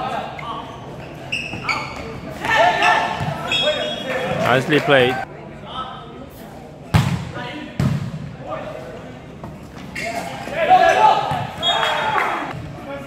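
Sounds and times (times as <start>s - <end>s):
volleyball hits in gym hall: 0.0s - 5.1s, 6.8s - 13.0s.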